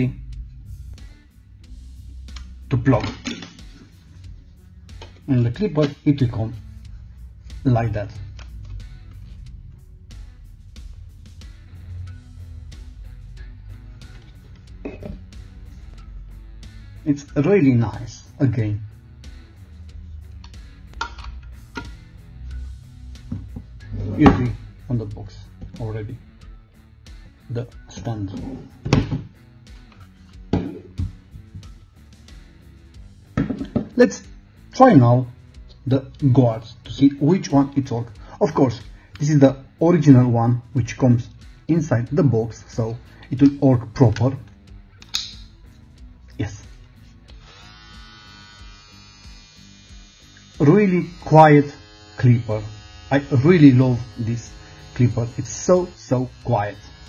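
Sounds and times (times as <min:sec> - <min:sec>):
background guitar music: 0:00.0 - 0:57.0
sharp handling clicks: 0:45.0 - 0:45.4
hair clipper motor humming: 0:47.3 - 0:57.0.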